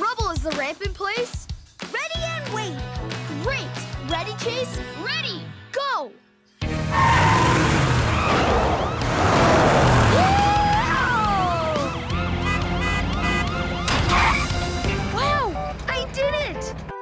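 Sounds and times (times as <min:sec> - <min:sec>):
background music: 0:00.0 - 0:17.0
cartoon police siren wailing: 0:08.0 - 0:14.6.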